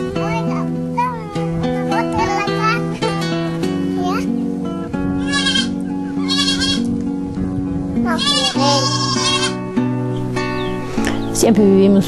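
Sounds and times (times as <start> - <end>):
background music with held notes: 0.0 - 12.0
goats bleating: 5.2 - 7.0, 8.1 - 9.8.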